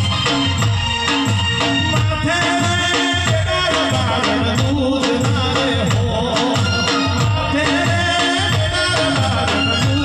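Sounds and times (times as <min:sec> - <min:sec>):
steady drum beat: 0:00.0 - 0:10.0
man singing into microphone: 0:01.6 - 0:10.0.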